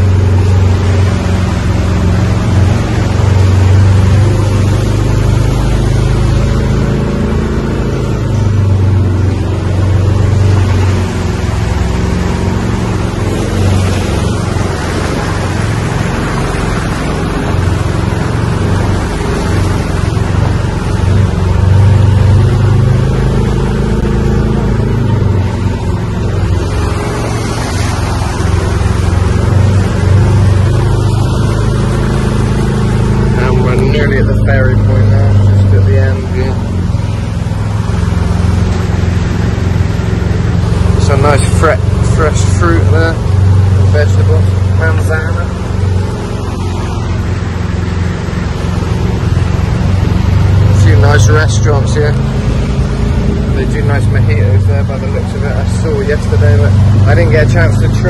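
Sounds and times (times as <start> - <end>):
tyres splashing through water: 0.0 - 58.0
vehicle engine humming: 0.0 - 58.0.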